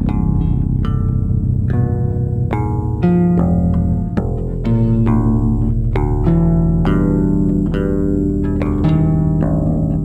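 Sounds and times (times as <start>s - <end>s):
electric bass line: 0.0s - 10.0s
plucked electric guitar notes: 0.0s - 10.0s.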